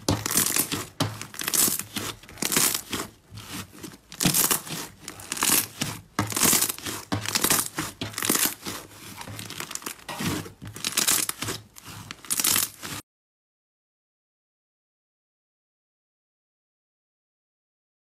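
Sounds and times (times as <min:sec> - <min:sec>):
slime squeezed crackling: 0:00.2 - 0:13.0.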